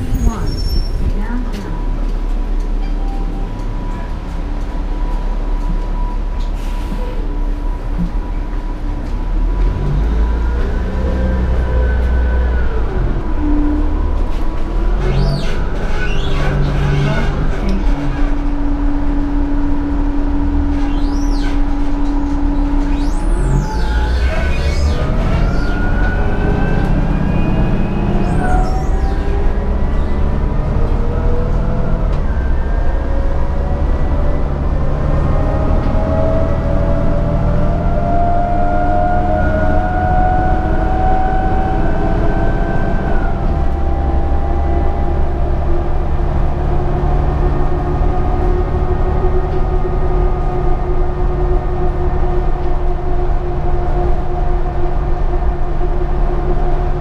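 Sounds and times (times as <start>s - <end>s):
bus drivetrain drone: 0.0s - 57.0s
whining tones climbing: 0.0s - 57.0s.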